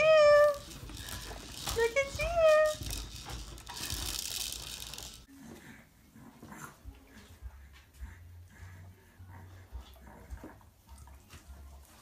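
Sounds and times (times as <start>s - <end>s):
dog sniffing and breathing: 5.3s - 12.0s.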